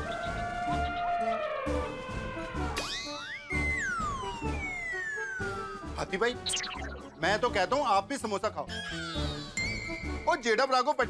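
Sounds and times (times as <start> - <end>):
comic background music: 0.0 - 11.0
sliding whistle sound effect: 2.8 - 7.0.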